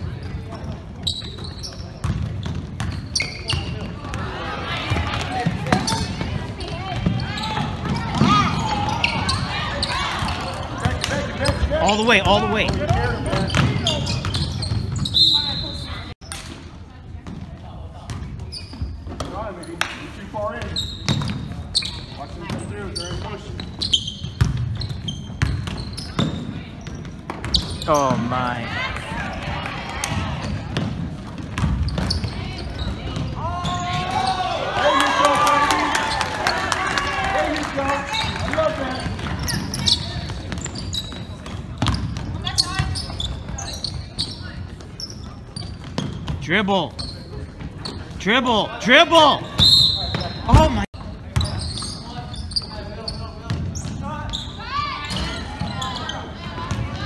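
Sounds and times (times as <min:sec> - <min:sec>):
sneaker squeaks: 0:00.0 - 0:16.5, 0:17.2 - 0:34.9, 0:37.9 - 0:57.0
voices echoing in a hall: 0:00.0 - 0:24.4, 0:26.0 - 0:57.0
basketball bouncing on hardwood: 0:30.7 - 0:32.4.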